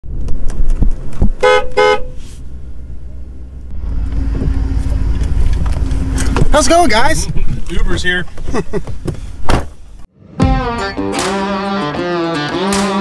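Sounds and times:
vehicle horn toots: 1.4 - 2.2
vehicle engine idling: 2.3 - 7.5.

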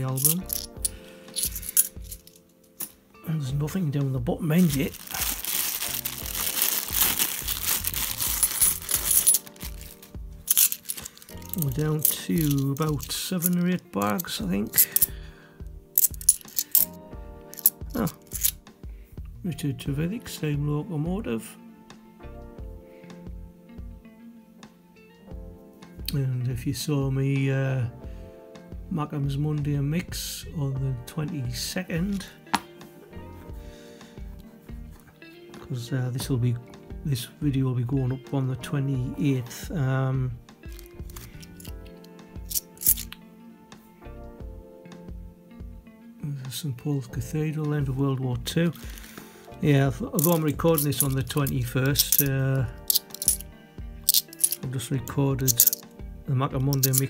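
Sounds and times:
coins clinking: 0.0 - 3.0, 4.6 - 15.1, 16.0 - 18.6, 40.7 - 43.2, 48.7 - 49.2, 50.2 - 54.6, 55.4 - 55.8, 56.7 - 57.0
background music: 0.0 - 57.0.

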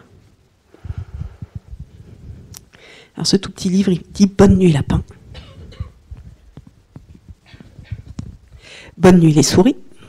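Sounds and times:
microphone handling bumps: 0.8 - 2.5, 4.4 - 8.7.

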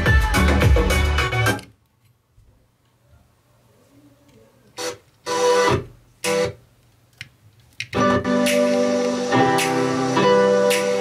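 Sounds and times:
guitar music through a speaker: 8.0 - 11.0.

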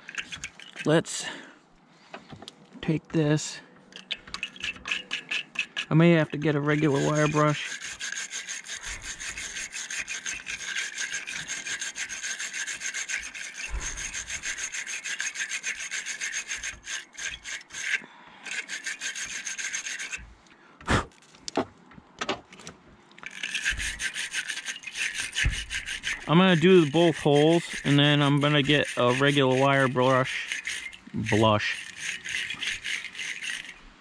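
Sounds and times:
wire brush scraping metal clamp: 0.0 - 1.2, 3.9 - 20.3, 22.5 - 34.0.

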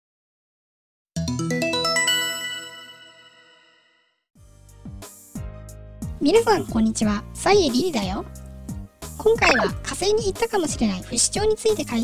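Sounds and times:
bell-like chime chord: 1.4 - 4.2.

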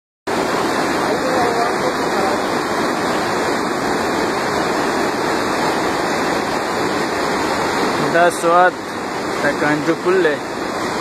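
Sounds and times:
river in flood rushing: 0.3 - 11.0.

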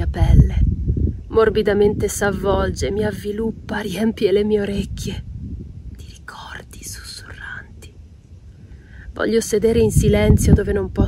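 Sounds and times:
low rumble: 0.0 - 11.0
woman's soft breathy sound: 8.6 - 9.2.

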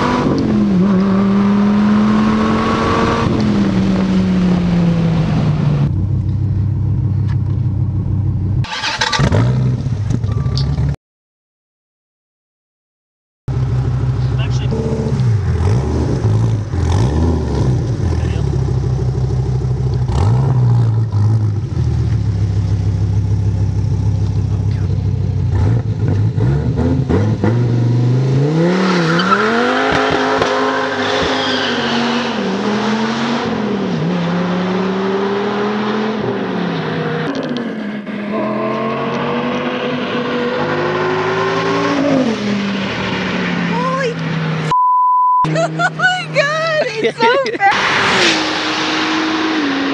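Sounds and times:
car engine revving and accelerating: 0.0 - 5.9, 13.5 - 44.7, 45.5 - 49.9
car engine idling: 5.9 - 9.0, 13.5 - 16.9, 17.8 - 20.3, 21.1 - 26.2.

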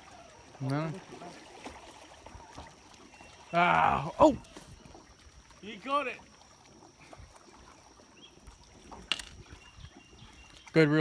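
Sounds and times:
light water noise: 0.0 - 11.0.

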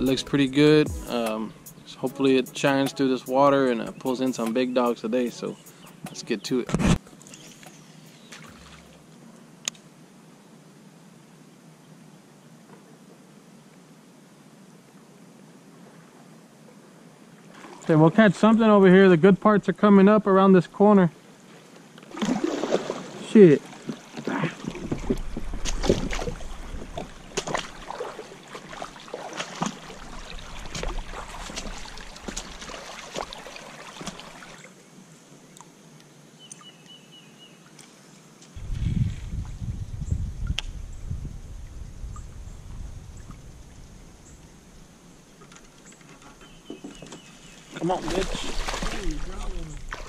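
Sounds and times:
water sloshing: 7.2 - 9.0, 17.5 - 18.0, 22.0 - 34.8, 43.1 - 50.0
kayak hull scraping on rocks: 22.2 - 34.4, 46.2 - 50.0
low rumble: 38.6 - 44.8.

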